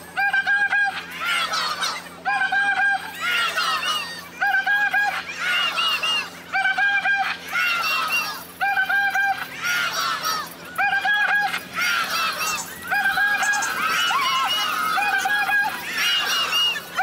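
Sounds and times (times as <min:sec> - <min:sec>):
crowd chanting: 0:09.2 - 0:17.0.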